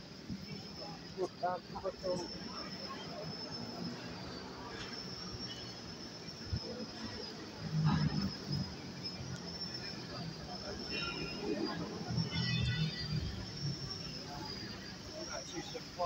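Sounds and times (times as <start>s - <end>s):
low traffic rumble: 0.0s - 16.0s
thin steady high tone: 0.0s - 16.0s
passers-by talking: 0.2s - 16.0s.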